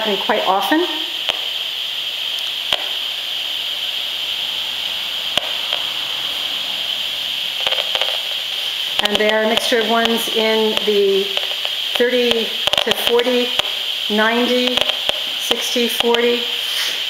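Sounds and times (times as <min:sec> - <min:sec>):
steady hiss: 0:00.0 - 0:17.0
sharp clicks: 0:01.2 - 0:01.6, 0:02.3 - 0:03.1, 0:05.2 - 0:06.4, 0:07.5 - 0:16.3.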